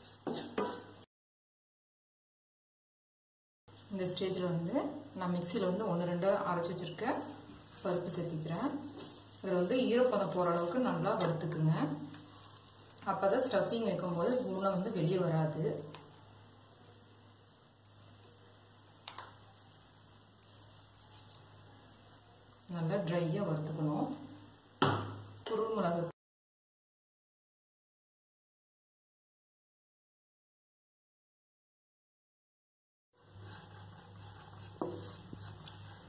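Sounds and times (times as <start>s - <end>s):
wooden spatula tapping a pan: 24.8s - 25.2s.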